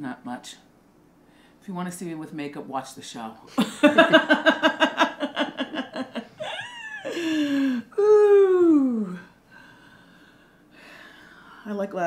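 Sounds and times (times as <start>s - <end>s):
soft intake of breath: 1.2s - 1.6s, 9.4s - 11.7s
woman's drawn-out ooh: 6.4s - 9.3s.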